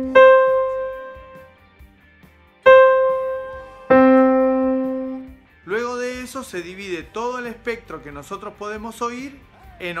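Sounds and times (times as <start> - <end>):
piano notes ringing: 0.0 - 1.6, 2.6 - 5.4.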